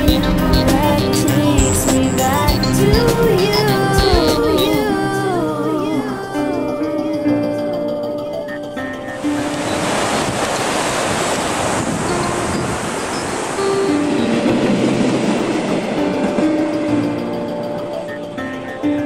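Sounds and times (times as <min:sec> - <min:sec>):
passenger train rushing past: 0:00.0 - 0:07.2, 0:09.0 - 0:19.0
background music with sustained tones: 0:00.0 - 0:19.0.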